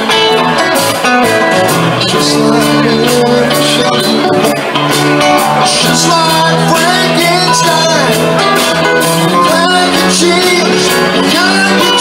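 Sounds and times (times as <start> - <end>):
electric guitar: 0.0 - 12.0
live rock band playing: 0.0 - 12.0
person singing: 0.0 - 12.0.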